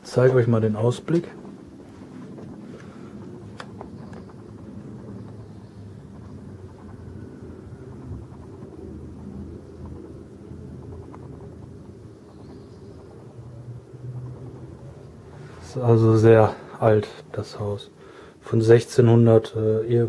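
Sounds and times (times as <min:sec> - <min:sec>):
low rumble of street noise: 0:00.0 - 0:20.0.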